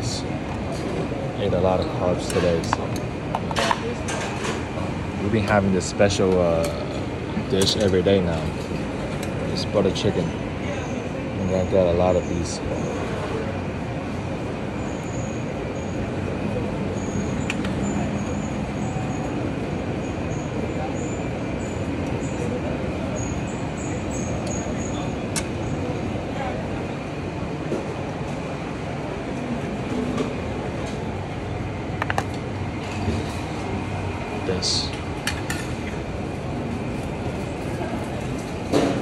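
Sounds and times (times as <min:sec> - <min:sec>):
murmur of voices: 0:00.0 - 0:39.0.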